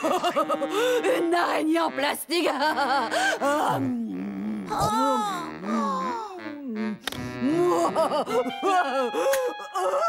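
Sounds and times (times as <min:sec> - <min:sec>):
person moaning wordlessly: 0:03.4 - 0:08.0.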